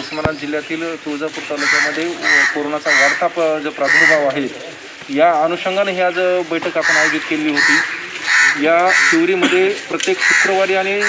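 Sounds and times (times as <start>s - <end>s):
man speaking: 0.0s - 11.0s
crow cawing: 1.5s - 4.4s, 6.8s - 9.4s, 10.1s - 11.0s.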